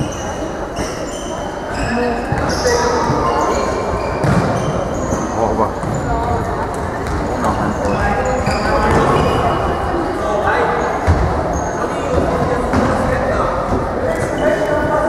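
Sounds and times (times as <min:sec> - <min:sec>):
people calling out and talking: 0:00.0 - 0:15.0
shoes squeaking on floor: 0:00.0 - 0:15.0
ball kicked and bouncing: 0:04.2 - 0:07.3.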